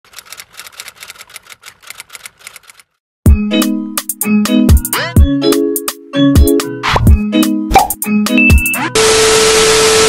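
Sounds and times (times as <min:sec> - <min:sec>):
light typing clicks: 0:00.1 - 0:03.0.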